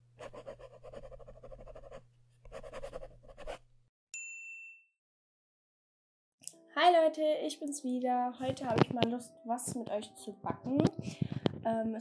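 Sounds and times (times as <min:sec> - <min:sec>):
pen scratching on paper: 0:00.2 - 0:03.6
bright ding: 0:04.2 - 0:05.0.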